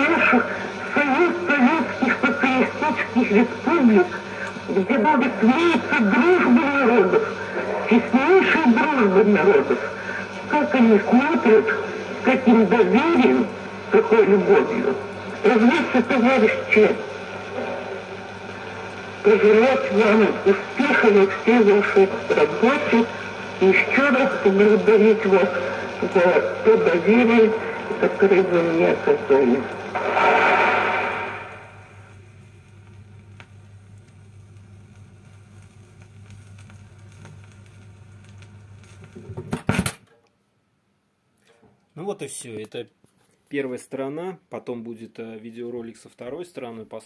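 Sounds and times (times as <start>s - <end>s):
vinyl record hiss and hum: 0.0s - 47.0s
vinyl surface noise crackles: 29.4s - 40.0s.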